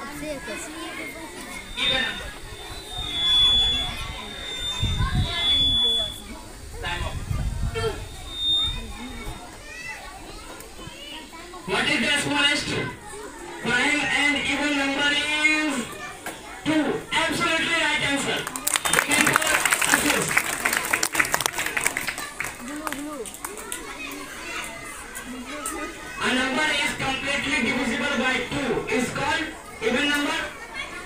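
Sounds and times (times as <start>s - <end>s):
children talking: 0.0s - 31.0s
high-pitched tone: 0.6s - 6.3s.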